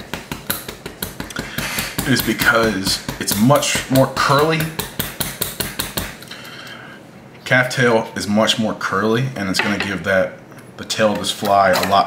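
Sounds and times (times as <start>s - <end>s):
hair stacker tapping on bench: 0.0s - 3.4s, 4.5s - 6.2s.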